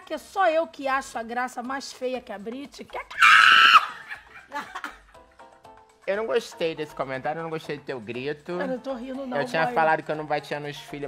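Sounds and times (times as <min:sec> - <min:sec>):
person screaming: 0:03.1 - 0:04.1
person laughing: 0:03.6 - 0:05.0.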